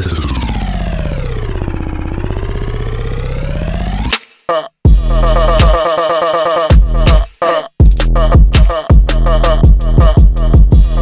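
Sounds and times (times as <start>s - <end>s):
stuttering electronic siren sweep: 0.0s - 4.1s.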